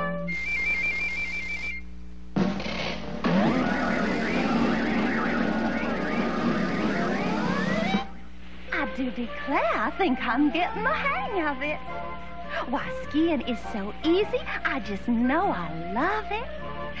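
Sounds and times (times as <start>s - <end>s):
warbling high trill: 2.6s - 8.1s
gliding music tones: 3.2s - 8.2s.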